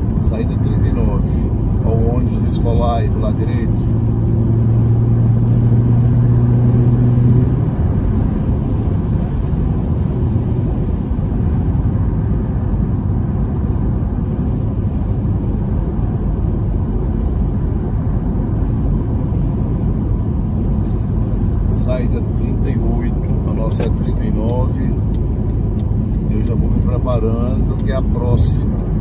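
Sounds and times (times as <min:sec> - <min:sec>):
low hum: 0:00.0 - 0:29.0
road and tyre noise in car: 0:00.0 - 0:29.0.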